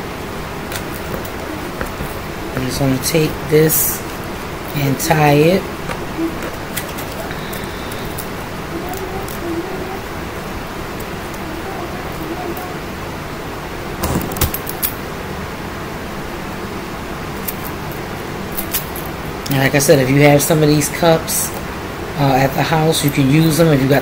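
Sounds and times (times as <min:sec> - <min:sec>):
steady hiss: 0:00.0 - 0:24.0.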